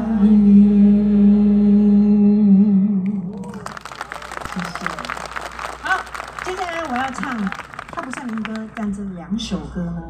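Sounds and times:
unaccompanied singing: 0.0 - 3.5
audience clapping: 3.3 - 9.0.

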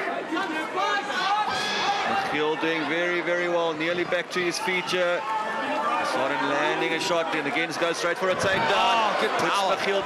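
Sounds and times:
crowd chatter in an arena: 0.0 - 10.0.

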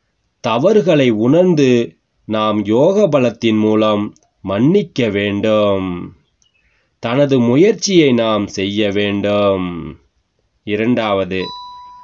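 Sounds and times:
bell-like chime: 11.4 - 12.0.

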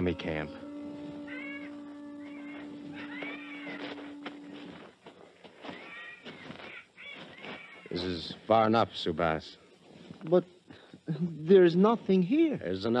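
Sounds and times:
meow-like animal calls: 0.0 - 4.6, 5.8 - 7.9
held low musical note: 0.0 - 4.8.

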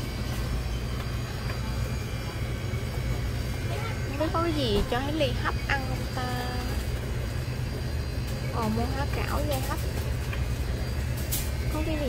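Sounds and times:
freezer cases humming: 0.0 - 12.0
woman speaking: 4.0 - 6.8, 8.5 - 9.8, 11.7 - 12.0.

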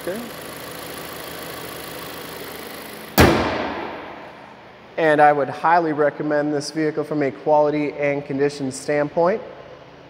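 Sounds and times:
car hood thump: 3.2 - 4.4.

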